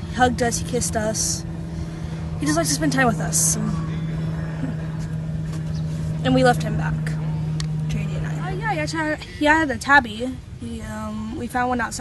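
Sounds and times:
low rumble: 0.0 - 11.2
steady low hum: 0.0 - 12.0.

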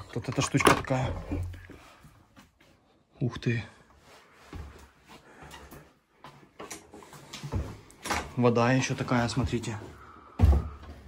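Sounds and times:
footsteps on wooden floor: 4.4 - 7.9.

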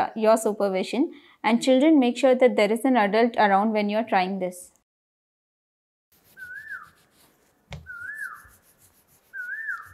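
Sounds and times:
whistled note swooping: 6.3 - 7.0, 7.8 - 8.6, 9.3 - 9.9.

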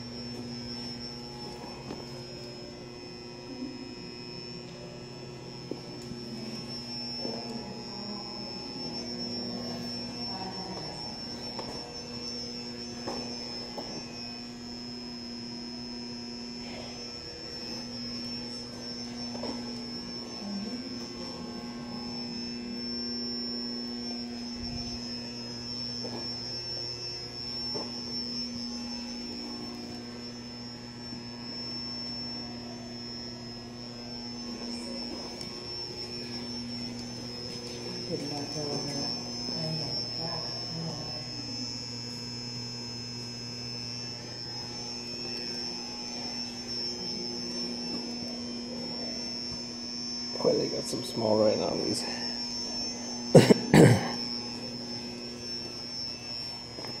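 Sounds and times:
steady hum: 0.0 - 57.0
thin high whine: 0.0 - 57.0.

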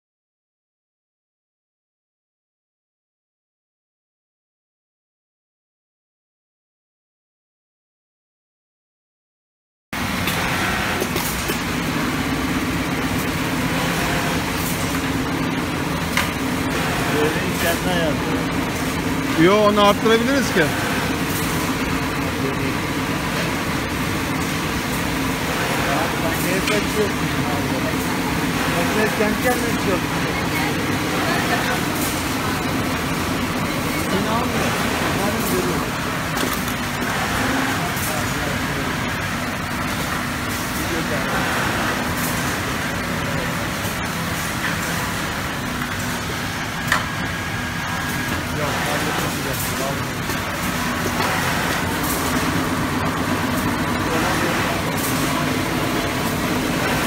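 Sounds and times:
sewing machinery drone and hiss: 10.0 - 57.0.

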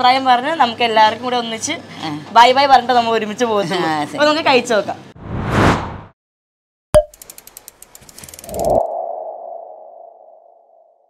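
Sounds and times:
quick run of ticks: 7.1 - 8.8.

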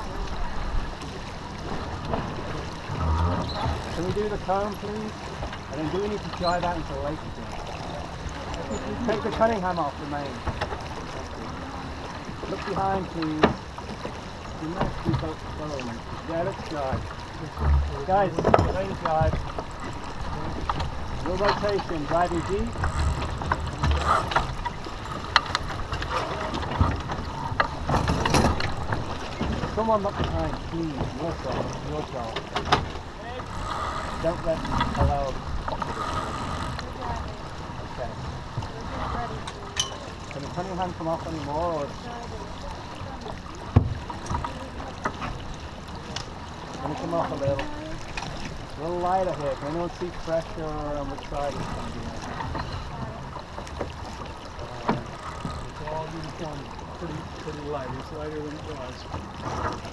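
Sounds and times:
water rushing along boat hull: 0.0 - 59.9
deck hardware clicks and knocks: 16.8 - 36.0.

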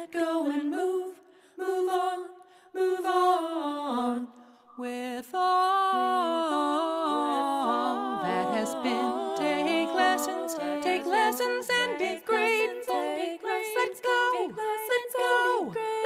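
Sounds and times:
woman singing a cappella: 0.0 - 16.0.

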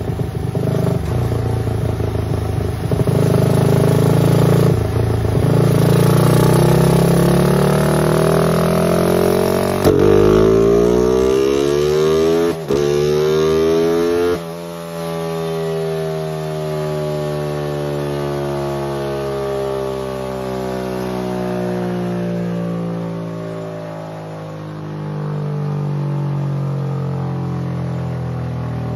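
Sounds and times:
motorcycle engine revving and idling: 0.0 - 28.9.

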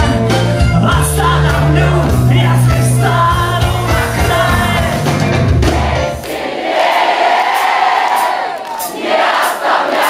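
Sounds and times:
rock band playing live: 0.0 - 6.3
audience singing together: 4.0 - 10.0.

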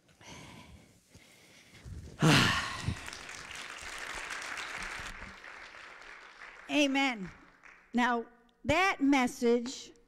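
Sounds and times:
crowd applauding: 2.6 - 8.0.

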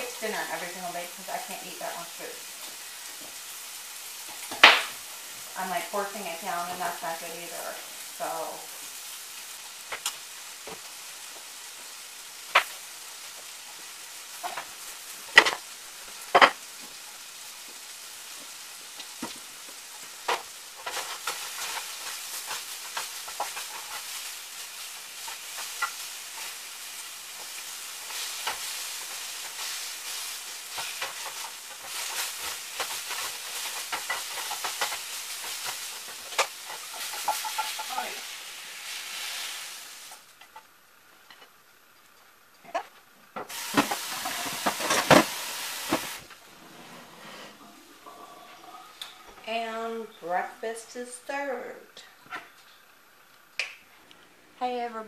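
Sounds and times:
food sizzling in skillet: 0.0 - 53.5.

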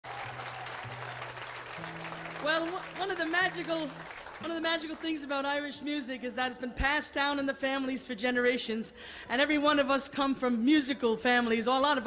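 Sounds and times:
audience applauding: 0.0 - 5.4.

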